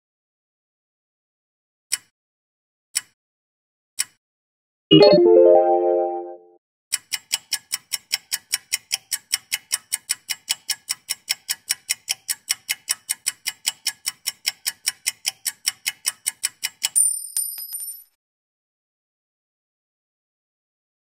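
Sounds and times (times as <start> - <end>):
clock ticking quickly: 6.9 - 17.0.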